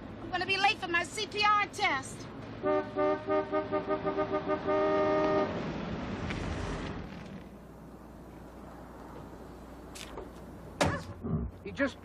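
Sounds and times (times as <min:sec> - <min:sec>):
car horn honking: 0:02.6 - 0:05.6.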